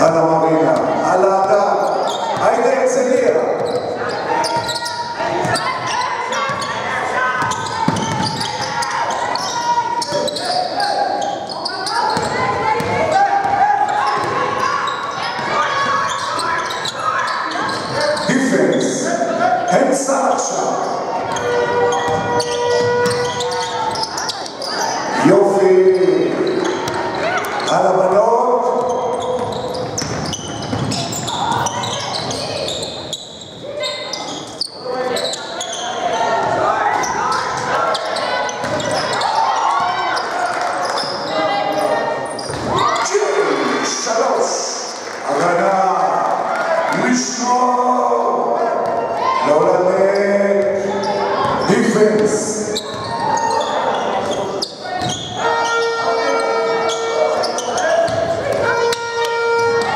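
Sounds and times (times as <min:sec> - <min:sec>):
people calling and shouting: 0:00.0 - 0:59.9
basketball bouncing on court: 0:07.4 - 0:10.6, 0:11.9 - 0:17.0, 0:21.2 - 0:24.5, 0:26.3 - 0:27.7, 0:28.8 - 0:32.8, 0:36.4 - 0:39.2, 0:42.4 - 0:42.8, 0:51.4 - 0:55.3, 0:57.2 - 0:58.7.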